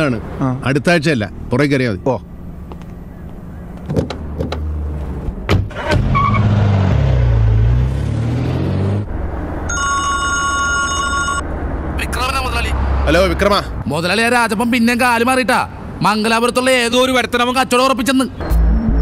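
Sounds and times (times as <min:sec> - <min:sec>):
car engine revving: 0:04.1 - 0:09.7
car door thumping shut: 0:05.5 - 0:06.0
phone ringing: 0:09.7 - 0:11.4
man speaking: 0:12.0 - 0:18.4.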